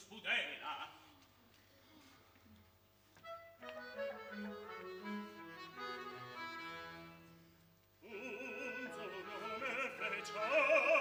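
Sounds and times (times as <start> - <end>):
operatic voice singing: 8.0 - 11.0.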